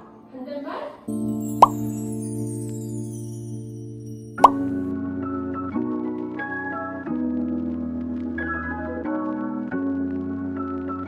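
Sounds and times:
background music held chord: 0.0 - 11.0
upward-sweeping plop sound effect: 4.4 - 4.7.

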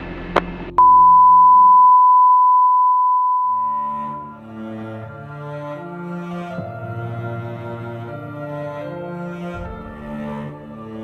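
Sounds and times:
steady electronic beep: 0.7 - 4.4
low music: 3.5 - 11.0
bowed low-string music: 3.6 - 11.0.

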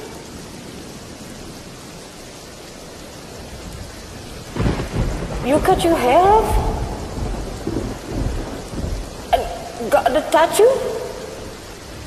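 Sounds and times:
steady rain: 0.0 - 12.0
loud deep burst: 6.5 - 9.9.

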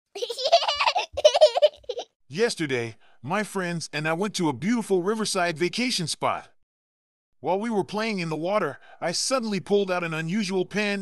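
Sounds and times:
high-pitched laughter: 0.2 - 2.1.

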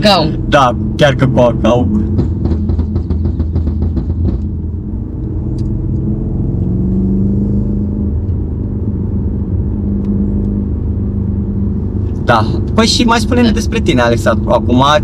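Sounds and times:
car engine accelerating: 0.0 - 15.0.

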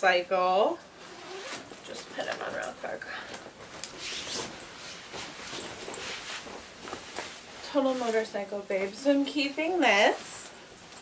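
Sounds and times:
jacket rustling and swishing: 0.9 - 2.2, 3.4 - 11.0.

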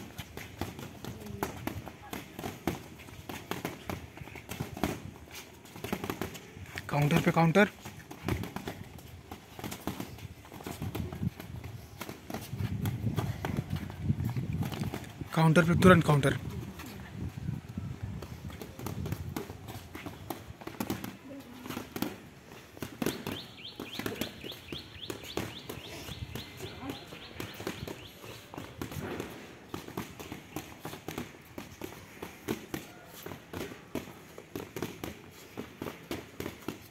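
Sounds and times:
boxing gloves smacking: 0.0 - 14.0, 18.5 - 22.2, 22.8 - 36.9
shoes shuffling on paving: 0.0 - 36.9.

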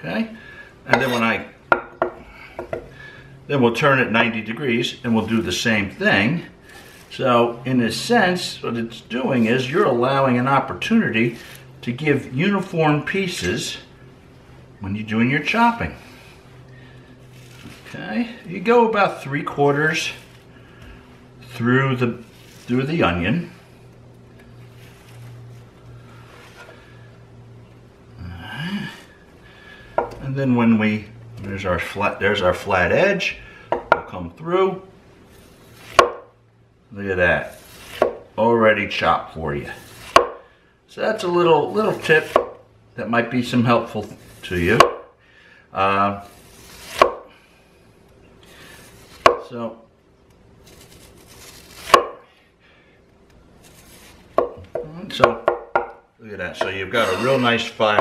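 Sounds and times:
knife chopping on wooden board: 35.9 - 36.3, 37.8 - 38.2, 40.0 - 40.4, 42.2 - 42.6, 44.8 - 45.1, 46.7 - 47.3, 49.1 - 49.5, 51.7 - 52.2, 54.3 - 56.0.

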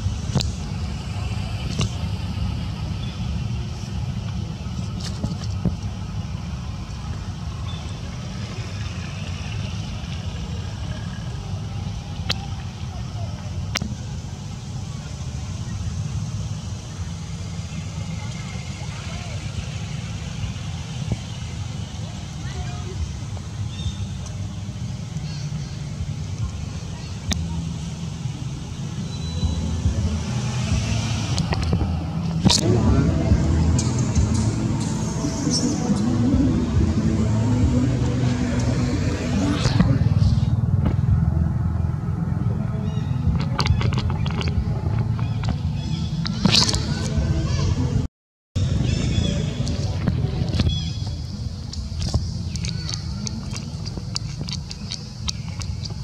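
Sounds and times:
low rumble: 24.4 - 56.0.

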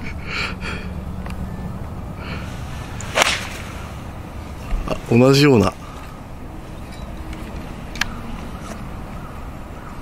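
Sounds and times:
golf club striking ball: 2.9 - 3.9.

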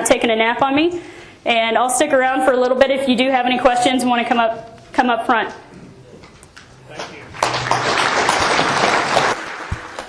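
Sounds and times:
audience applauding: 6.9 - 10.0.

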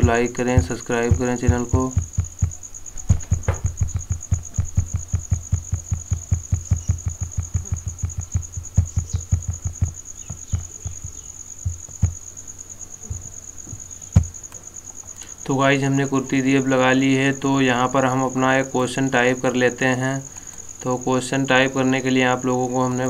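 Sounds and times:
high-pitched pulsing trill: 3.6 - 11.2.

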